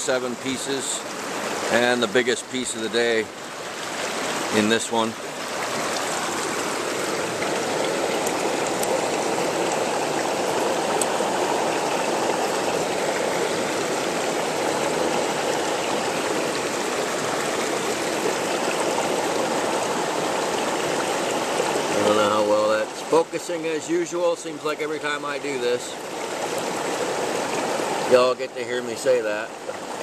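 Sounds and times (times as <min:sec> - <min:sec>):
creek water running over rocks: 0:00.0 - 0:30.0.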